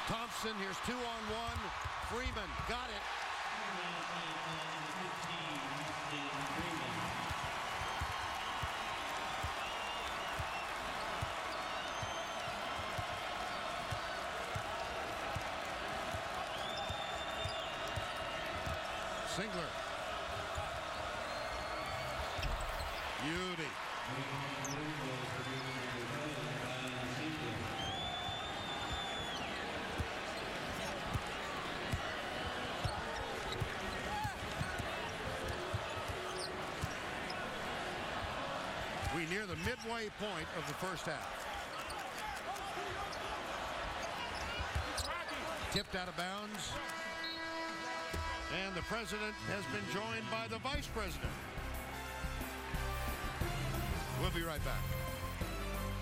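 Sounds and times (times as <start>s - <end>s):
arena crowd noise: 0.0s - 56.0s.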